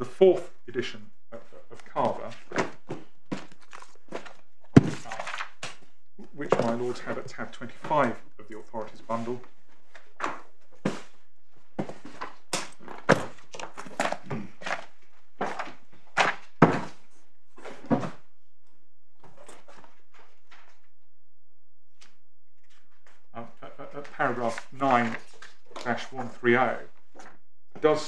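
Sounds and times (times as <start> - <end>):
person addressing a court: 0.0 - 2.4, 6.2 - 9.4, 23.4 - 25.2, 25.8 - 26.9, 27.8 - 28.0
paper pages rustling: 2.0 - 6.9, 11.8 - 17.9, 22.0 - 23.2, 24.0 - 26.4.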